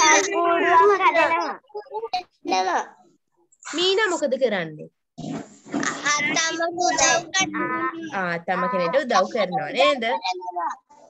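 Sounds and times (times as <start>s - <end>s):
child talking over video call: 0.0s - 4.2s, 5.8s - 11.0s.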